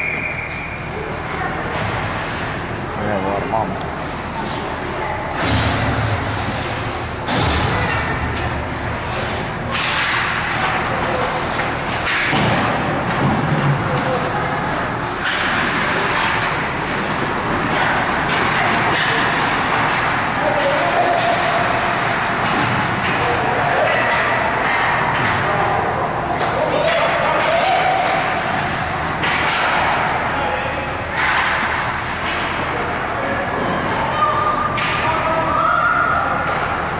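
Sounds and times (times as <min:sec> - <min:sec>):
spectators' voices echoing: 0:00.0 - 0:36.9
hockey sticks puck and boards thudding: 0:09.7 - 0:14.3, 0:15.1 - 0:25.6, 0:26.4 - 0:30.4, 0:31.0 - 0:33.8.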